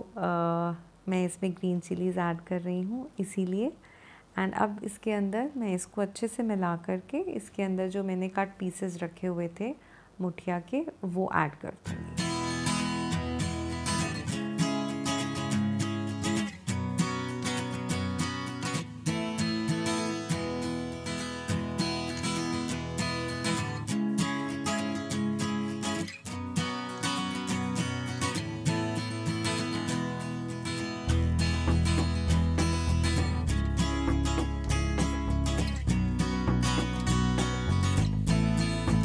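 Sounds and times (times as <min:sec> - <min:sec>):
strummed acoustic guitar: 0:11.8 - 0:39.0.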